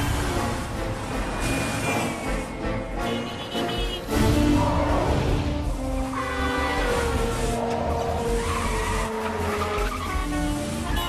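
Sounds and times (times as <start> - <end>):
dramatic soundtrack music: 0.0 - 11.0
tyres squealing: 5.9 - 11.0.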